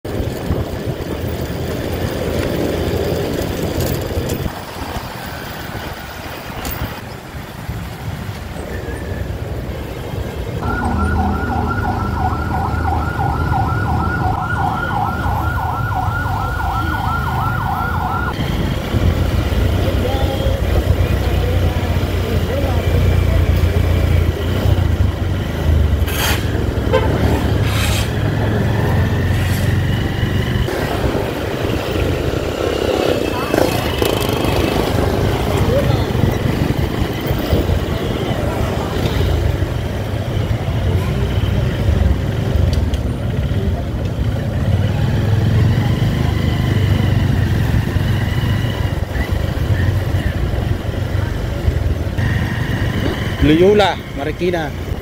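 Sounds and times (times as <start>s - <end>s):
motorcycle engine hum: 0.0s - 55.0s
road noise: 0.0s - 55.0s
warbling siren: 10.6s - 18.7s.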